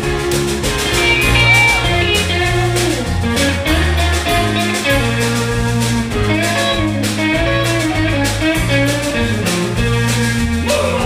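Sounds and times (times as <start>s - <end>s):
bass line: 0.0s - 11.0s
drums: 0.0s - 11.0s
electric guitar: 0.0s - 11.0s.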